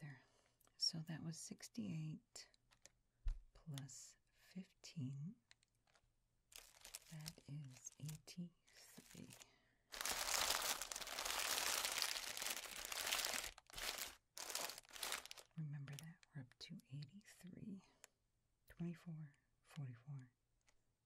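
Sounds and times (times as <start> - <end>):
soft speech: 0.8 - 2.5, 3.6 - 5.4, 7.1 - 9.5, 15.5 - 18.0, 18.7 - 20.4
candy wrappers crinkling: 5.7 - 16.3.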